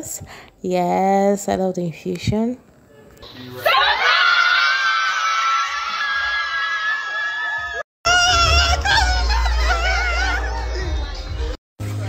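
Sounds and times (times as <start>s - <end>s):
group of people screaming: 3.6s - 10.8s.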